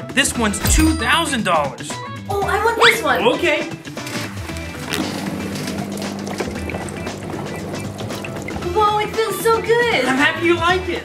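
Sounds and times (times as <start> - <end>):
background music: 0.0 - 11.0
water churning: 4.0 - 10.4
bubble pump humming: 4.2 - 10.1.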